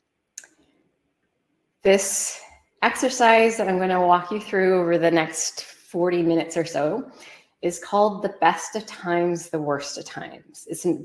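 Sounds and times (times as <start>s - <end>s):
woman's voice: 1.9s - 11.0s.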